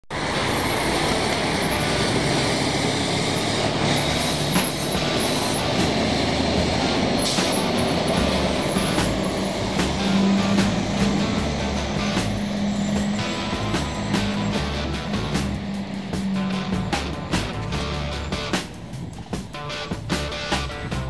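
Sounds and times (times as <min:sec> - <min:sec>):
street traffic noise: 0:00.0 - 0:21.0
tanker truck driving past: 0:00.1 - 0:21.0.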